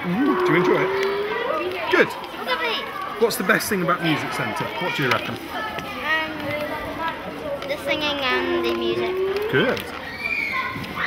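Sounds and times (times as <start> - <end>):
children talking: 0.0 - 11.0
girl speaking: 2.4 - 3.0, 7.7 - 9.2.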